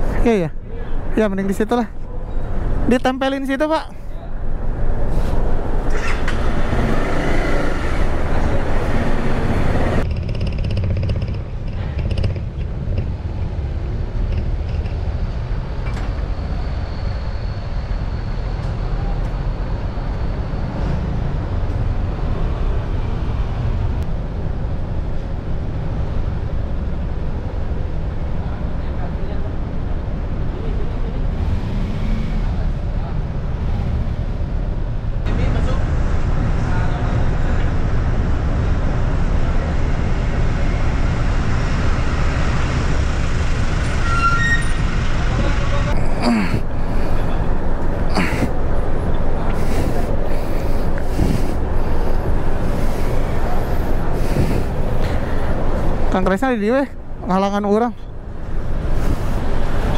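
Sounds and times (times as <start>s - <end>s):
low engine rumble: 0.0s - 59.9s
indistinct voices: 45.2s - 56.2s.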